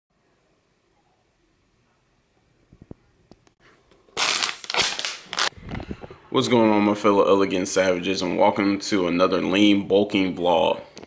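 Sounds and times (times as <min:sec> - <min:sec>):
plastic bottle crinkling: 0:04.1 - 0:05.5.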